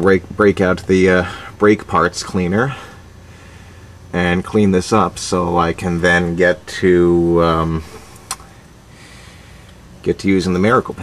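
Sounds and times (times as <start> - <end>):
faint background hiss: 0.0 - 11.0
small click: 8.3 - 8.5.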